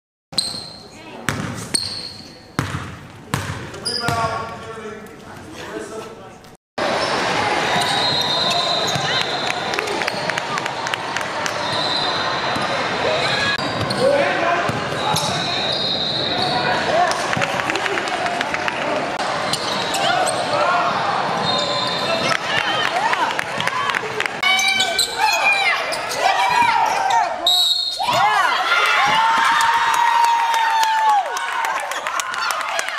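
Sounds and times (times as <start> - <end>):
sneaker squeaks: 0.4 - 6.2, 7.8 - 9.4, 11.5 - 14.1, 14.7 - 16.6, 19.5 - 20.5, 24.5 - 28.2
voices in a gym: 0.5 - 2.6, 3.6 - 6.4, 11.6 - 29.6
basketball bouncing on court: 1.2 - 4.6.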